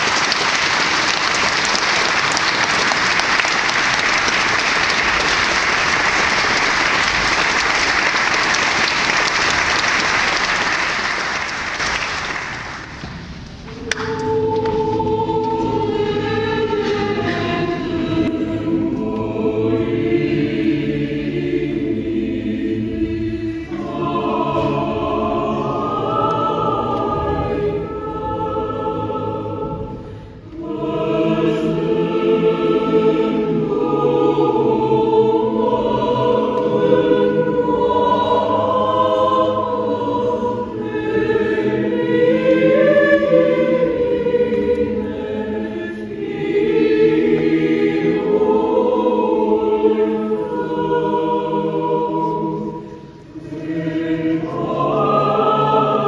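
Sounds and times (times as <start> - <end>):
mixed choir singing chords: 0.0 - 13.0, 13.7 - 56.0.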